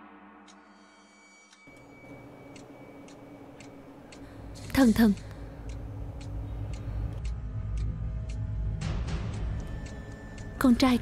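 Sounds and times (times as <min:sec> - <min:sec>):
soft background music: 0:00.0 - 0:11.0
thin steady high tone: 0:00.8 - 0:07.2
faint regular ticking: 0:01.7 - 0:11.0.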